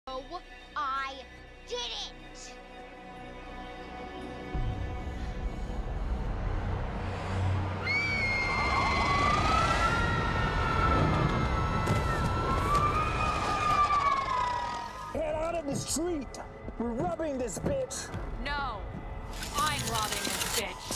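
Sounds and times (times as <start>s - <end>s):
siren wailing: 7.8s - 15.2s.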